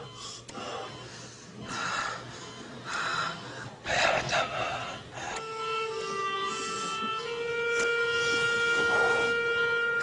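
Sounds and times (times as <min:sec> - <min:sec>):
man whispering weakly: 0:03.8 - 0:05.4.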